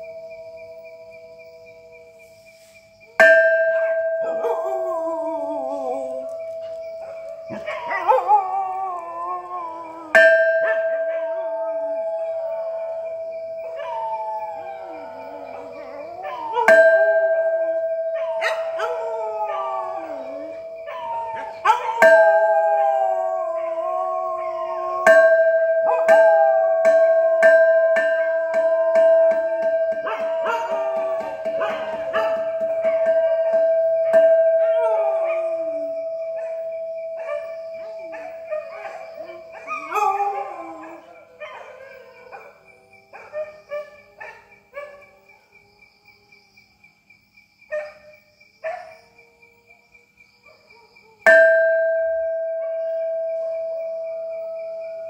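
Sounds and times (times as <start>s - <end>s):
dogs howling: 3.5s - 45.6s, 47.7s - 55.0s
temple bell struck with mallet: 25.0s - 34.8s, 51.3s - 54.4s.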